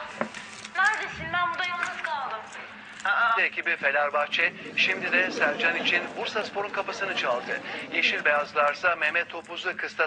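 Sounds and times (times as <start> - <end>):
person speaking: 3.0 - 9.5.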